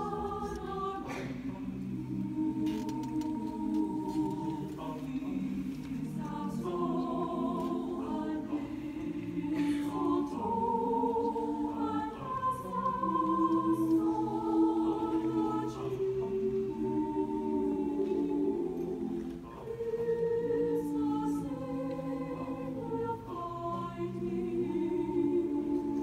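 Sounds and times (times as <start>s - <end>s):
choir singing in harmony: 0.0s - 26.0s.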